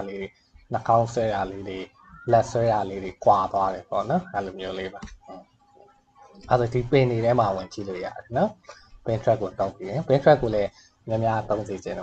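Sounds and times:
man talking: 0:00.0 - 0:05.4, 0:06.4 - 0:12.0.

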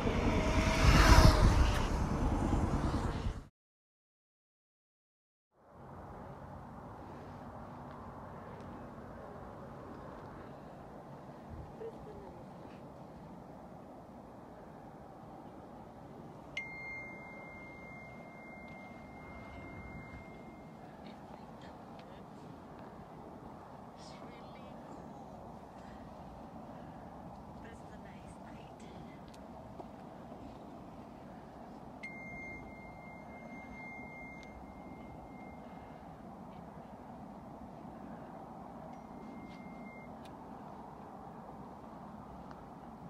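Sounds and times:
steady low rumble: 0:00.0 - 0:03.5, 0:05.9 - 0:43.0
wind and road noise: 0:00.0 - 0:03.5, 0:05.6 - 0:43.0
high-pitched electronic beep: 0:16.6 - 0:20.8, 0:32.0 - 0:35.6, 0:39.0 - 0:40.1
small bell ding: 0:16.6 - 0:20.8, 0:32.0 - 0:35.6, 0:38.9 - 0:40.1.

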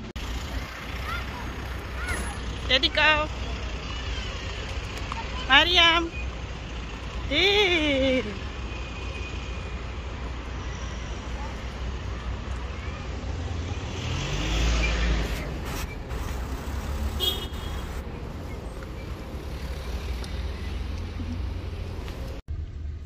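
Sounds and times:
low rumble of cars: 0:00.0 - 0:23.0
vehicle passing close: 0:13.1 - 0:22.4.

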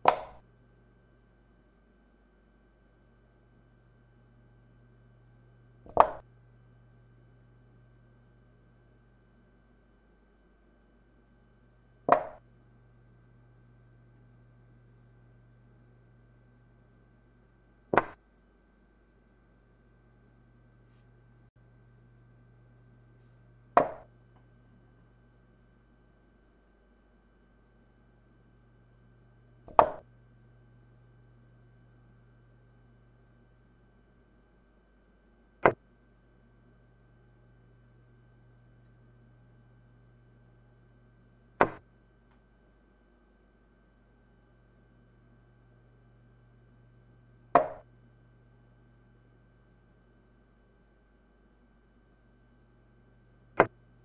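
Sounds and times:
chess piece knocking on board: 0:00.1 - 0:00.4, 0:05.9 - 0:06.2, 0:12.1 - 0:12.4, 0:18.0 - 0:18.2, 0:23.8 - 0:24.1, 0:29.7 - 0:30.0, 0:47.6 - 0:47.8.

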